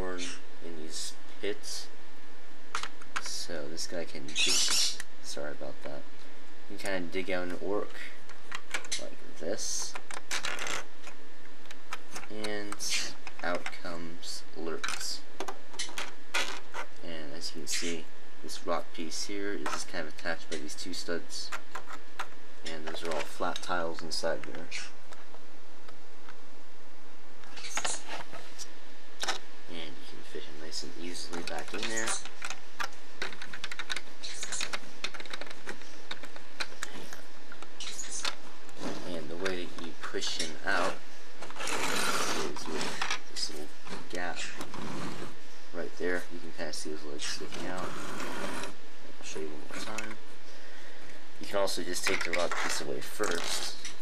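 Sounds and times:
plastic bricks clicking: 31.3s - 38.4s.

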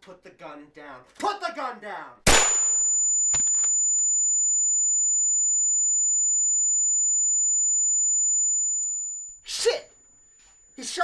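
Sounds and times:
high-pitched ringing tone: 2.5s - 10.8s.

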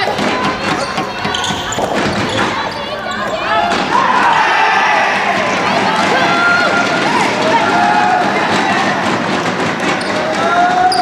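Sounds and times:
shoes squeaking on wooden floor: 0.0s - 4.0s, 9.3s - 11.0s
voices echoing in a hall: 0.0s - 11.0s.

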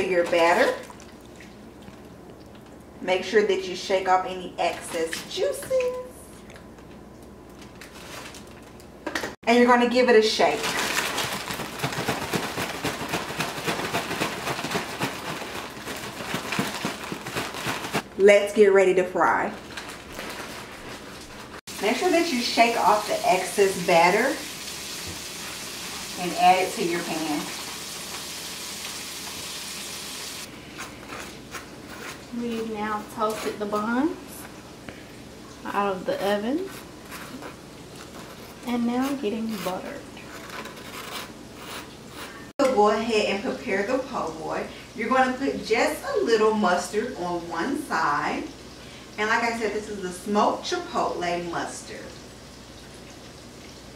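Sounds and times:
plastic bag shaken with crackling rustle: 7.7s - 8.8s, 10.3s - 18.1s, 19.5s - 22.0s
spoon scraping butter on bread: 30.7s - 33.9s, 36.1s - 42.5s.

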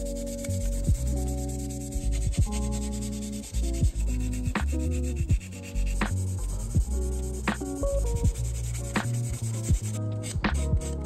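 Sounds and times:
background music of sustained chords: 0.0s - 11.0s
sanding stick rubbing on plastic: 0.0s - 11.0s.

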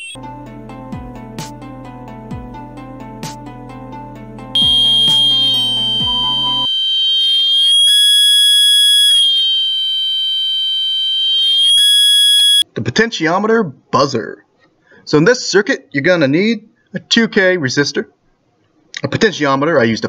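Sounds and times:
background music: 0.2s - 6.7s
piezo buzzer shrill tone: 4.6s - 12.6s.

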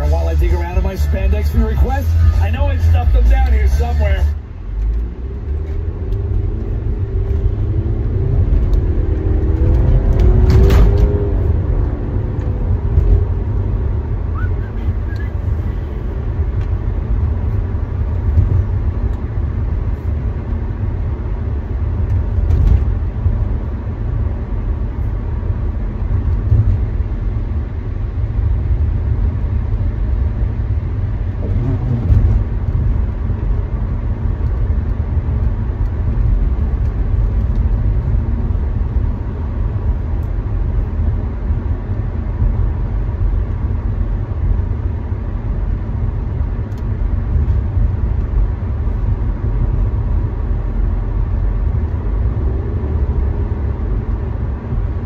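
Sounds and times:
car engine and road rumble: 0.0s - 55.0s.

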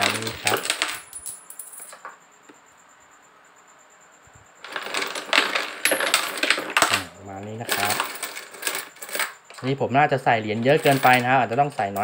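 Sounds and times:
coins clattering in rotating drum: 0.0s - 2.0s, 4.6s - 9.7s, 10.4s - 12.0s.

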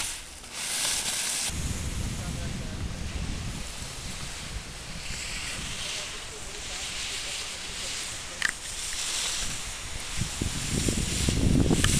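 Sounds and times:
skis scraping on snow: 0.0s - 11.9s
wind rumbling on microphone: 0.0s - 11.9s.

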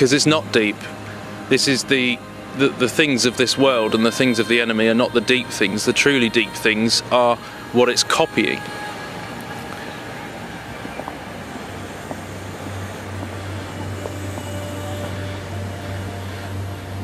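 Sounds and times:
low steady hum: 0.0s - 17.0s
open-air background noise: 0.0s - 17.0s.

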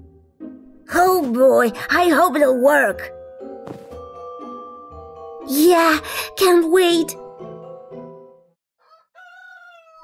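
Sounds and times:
music: 0.0s - 8.6s
rooster crowing: 8.8s - 10.0s.

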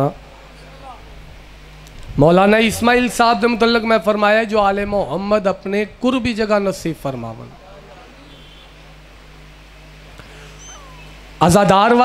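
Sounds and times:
sound system hum: 0.0s - 12.0s
faint high chirps and squeaks: 8.2s - 8.8s, 10.4s - 11.3s.

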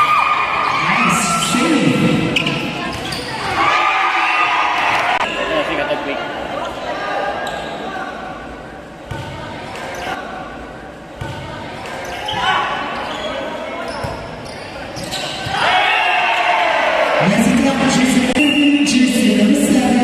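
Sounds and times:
people shouting: 15.5s - 17.2s.

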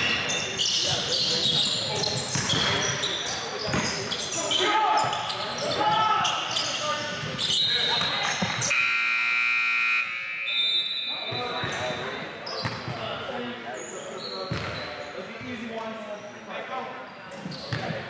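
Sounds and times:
shoe squeaks: 0.0s - 8.7s, 10.4s - 12.9s, 13.8s - 15.2s, 17.3s - 18.0s
players' voices echoing: 0.0s - 18.0s
scoreboard buzzer: 8.7s - 10.6s.

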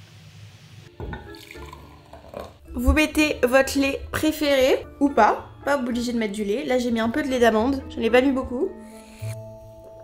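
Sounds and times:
background music: 0.9s - 10.0s
liquid pouring into mug: 1.0s - 2.6s.

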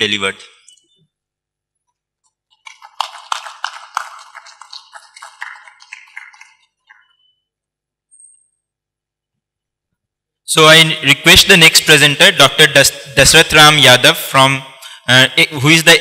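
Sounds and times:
audience clapping: 2.5s - 7.1s.

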